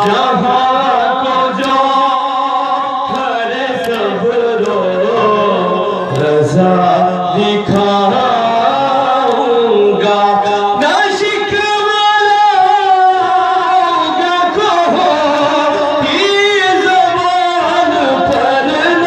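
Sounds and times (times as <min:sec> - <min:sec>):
man singing a lament: 0:00.0 - 0:19.0.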